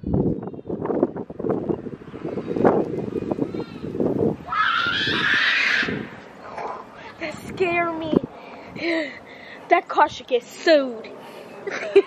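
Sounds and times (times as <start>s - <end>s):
wind on microphone: 0.0s - 6.2s, 7.2s - 9.0s.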